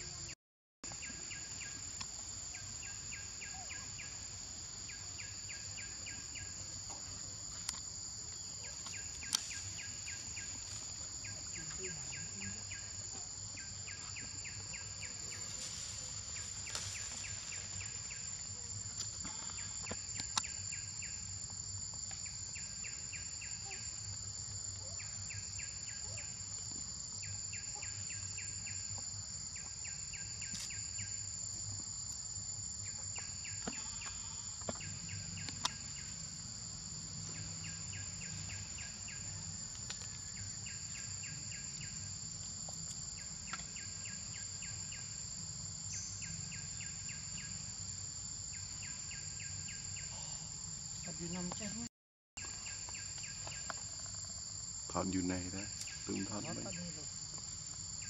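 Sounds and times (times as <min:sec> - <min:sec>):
high-pitched insect drone: 0:00.0 - 0:58.0
pulsed insect chirp: 0:00.0 - 0:58.0.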